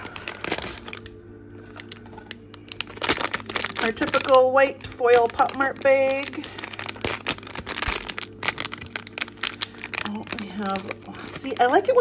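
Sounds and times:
plastic foil bag crinkling: 0.0s - 12.0s.

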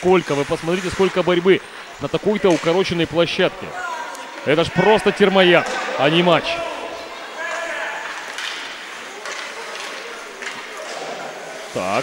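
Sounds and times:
arena ambience: 0.0s - 12.0s
faint voices calling out: 3.4s - 11.7s
hockey sticks and puck knocking: 7.5s - 11.1s.

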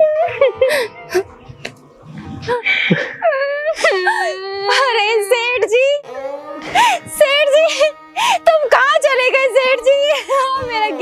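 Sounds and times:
woman wailing in grief: 2.4s - 5.3s, 6.4s - 11.0s.

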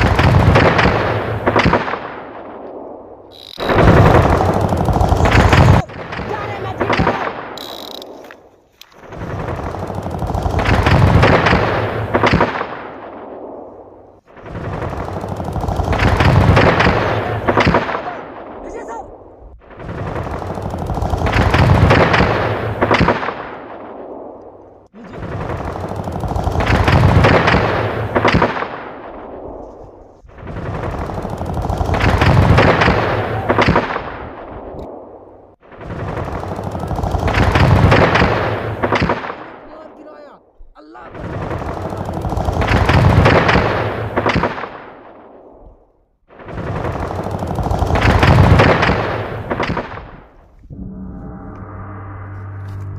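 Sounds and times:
rapid gunfire: 0.0s - 2.4s, 3.4s - 8.2s, 9.0s - 13.4s, 14.3s - 18.6s, 19.6s - 24.1s, 25.0s - 29.4s, 30.4s - 39.7s, 41.1s - 45.5s, 46.3s - 50.4s.

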